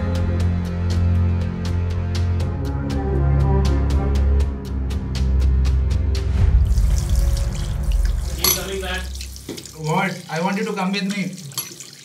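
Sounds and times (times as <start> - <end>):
water running onto tiles: 6.6 - 12.0
person speaking: 8.3 - 11.6.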